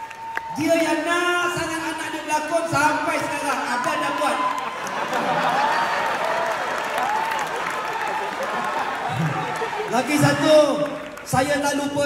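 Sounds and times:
audience applauding: 0.0 - 12.0
voices over clapping: 3.9 - 11.3.

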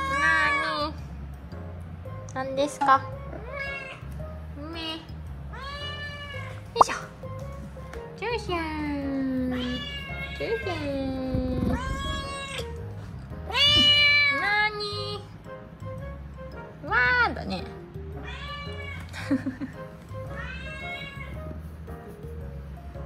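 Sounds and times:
cat meowing: 3.4 - 4.0, 5.5 - 6.8, 9.4 - 12.8, 13.5 - 15.2, 18.2 - 19.1, 20.3 - 21.4.

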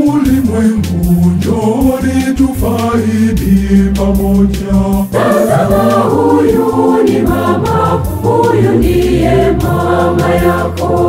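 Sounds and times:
organ bass notes: 0.0 - 11.0
choir singing a hymn: 0.1 - 11.0.

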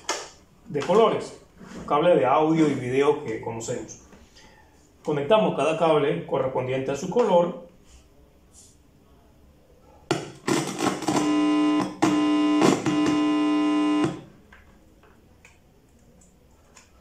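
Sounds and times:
loud electrical buzz: 10.5 - 14.3.

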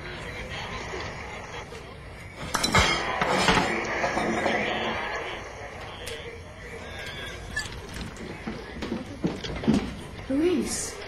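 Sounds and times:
loud noise burst: 0.0 - 6.8.

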